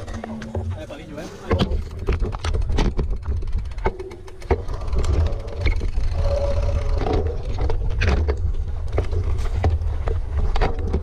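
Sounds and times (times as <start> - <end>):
mountain bike clattering over rocks: 0.0 - 11.0.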